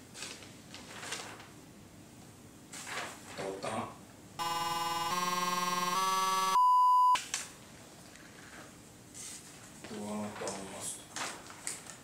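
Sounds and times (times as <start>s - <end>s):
rising synth tones: 4.4s - 7.2s
short pure beep: 4.4s - 7.2s.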